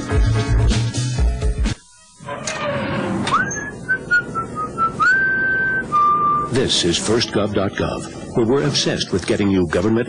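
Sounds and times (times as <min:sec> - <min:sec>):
whistled tune: 0:03.3 - 0:06.6.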